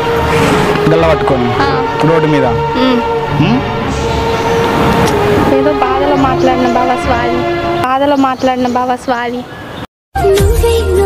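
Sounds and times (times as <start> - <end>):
vehicle passing by: 0.0 - 8.8.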